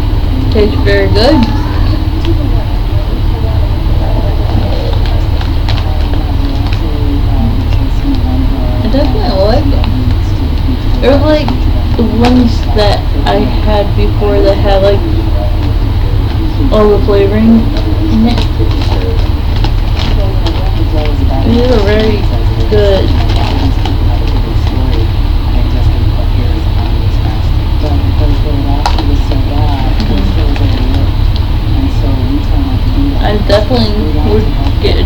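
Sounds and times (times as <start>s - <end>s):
loud low rumble: 0.0s - 35.0s.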